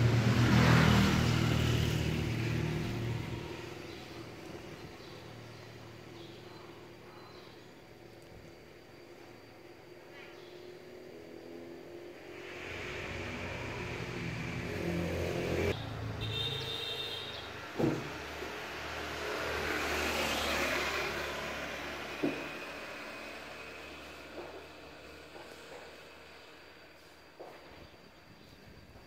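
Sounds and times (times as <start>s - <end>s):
road vehicles passing: 0.0s - 27.7s
engine and tyre noise: 0.0s - 28.6s
sharp knocks: 17.8s - 18.2s.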